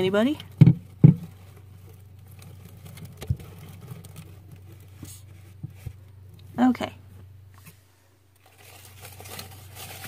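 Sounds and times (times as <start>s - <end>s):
soft knocks and scrapes: 0.5s - 6.1s.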